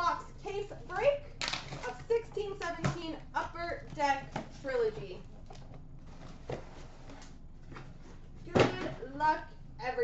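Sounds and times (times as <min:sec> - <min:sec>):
cardboard rustling: 0:04.0 - 0:08.9.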